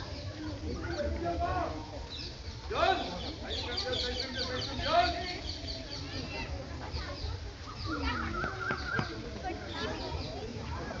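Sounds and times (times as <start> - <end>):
people talking indistinctly: 0.0 - 11.0
high chirping calls: 1.9 - 10.6.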